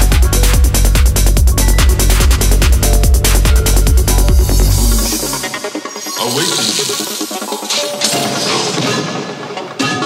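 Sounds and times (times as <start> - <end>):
psytrance synth and percussion: 0.0 - 9.8.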